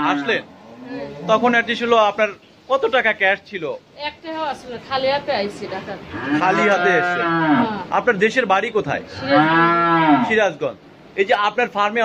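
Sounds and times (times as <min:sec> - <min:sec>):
cow mooing: 0:00.0 - 0:01.5, 0:06.1 - 0:07.8, 0:09.1 - 0:10.4.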